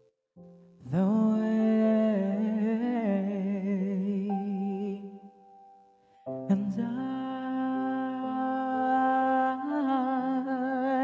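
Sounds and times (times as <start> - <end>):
young man singing long note: 6.4 - 11.0.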